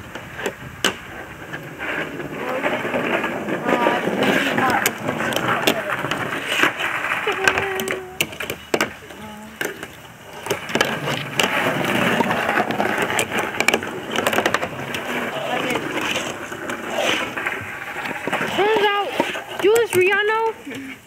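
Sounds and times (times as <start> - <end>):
children's voices: 2.3 - 6.3, 7.0 - 8.4, 15.1 - 17.4, 18.4 - 21.0.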